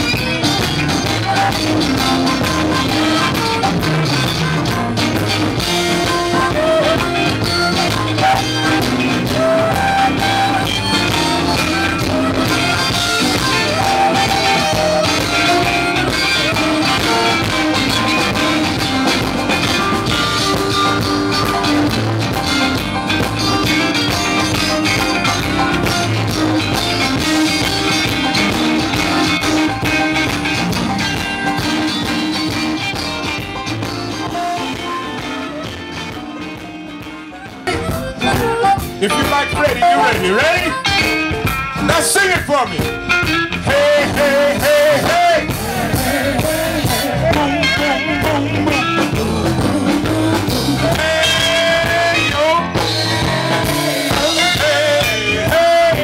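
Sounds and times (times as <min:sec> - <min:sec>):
live electric blues band: 0:00.0 - 0:56.0.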